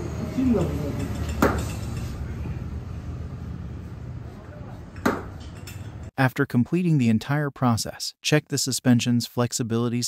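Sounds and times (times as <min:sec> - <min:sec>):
low workshop hum: 0:00.0 - 0:06.1.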